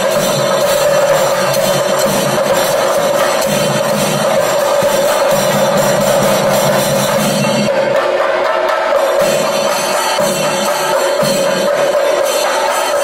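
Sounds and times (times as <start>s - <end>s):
drum ensemble played with sticks: 0.0s - 13.0s.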